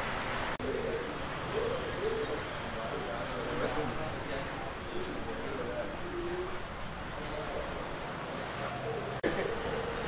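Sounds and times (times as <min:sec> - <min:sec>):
steady background hiss: 0:00.0 - 0:10.0
bird calling low: 0:00.6 - 0:02.7.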